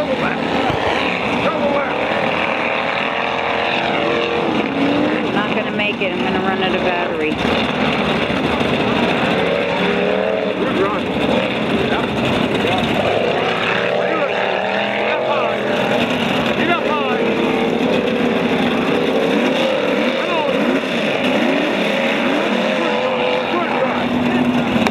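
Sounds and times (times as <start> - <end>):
distant truck engine revving: 0.0 - 24.9
voices: 0.0 - 24.9.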